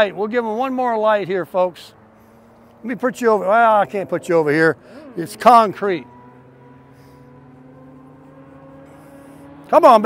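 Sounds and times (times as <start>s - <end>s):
road traffic engine hum: 0.0s - 10.0s.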